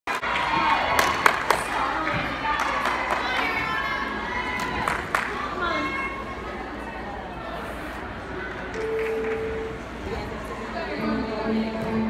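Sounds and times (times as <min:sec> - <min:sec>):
crowd cheering and chattering: 0:00.1 - 0:12.0.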